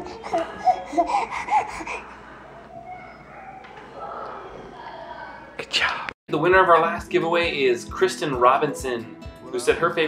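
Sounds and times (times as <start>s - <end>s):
baby vocalizing: 0.0s - 3.6s.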